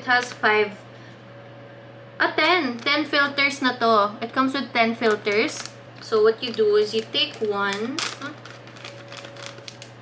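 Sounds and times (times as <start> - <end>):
plastic bag crackling: 2.6 - 3.2, 5.0 - 10.0.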